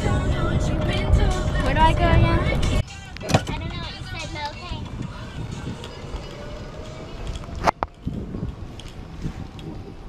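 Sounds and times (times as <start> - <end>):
golf cart rumbling: 0.0 - 10.0.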